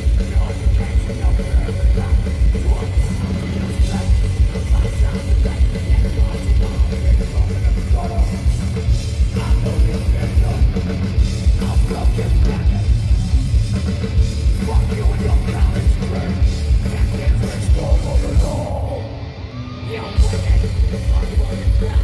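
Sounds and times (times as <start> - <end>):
heavy metal band playing: 0.0 - 22.0.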